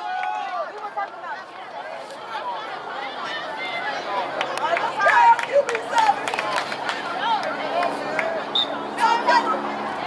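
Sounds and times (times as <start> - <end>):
voices calling out and talking: 0.0 - 10.0.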